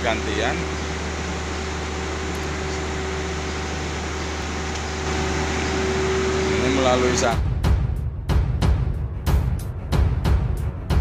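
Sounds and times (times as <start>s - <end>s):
steady mid-pitched machine tone: 0.0s - 7.6s
machinery low hum: 0.0s - 11.0s.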